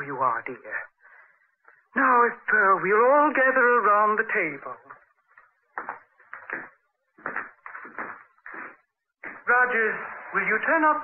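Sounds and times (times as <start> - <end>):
knocks and scuffs: 5.4 - 9.5.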